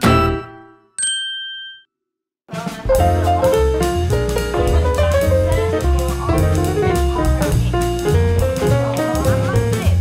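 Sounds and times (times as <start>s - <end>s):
bright chime ding: 0.0s - 1.9s.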